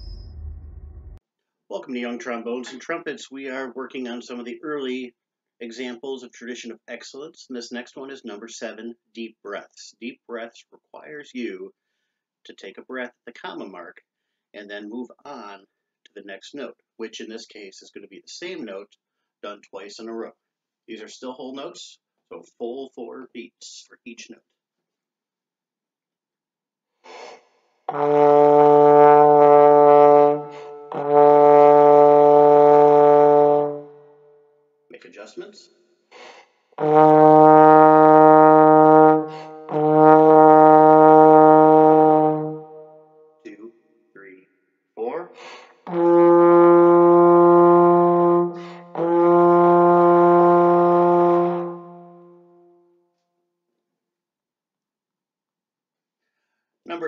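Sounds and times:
quick breath: 11.8s - 12.2s
trombone long held notes: 27.9s - 34.0s, 36.8s - 43.0s, 45.9s - 52.5s.

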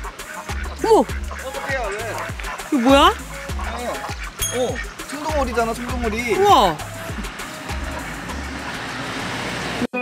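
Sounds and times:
outdoor rushing noise: 4.8s - 10.0s.

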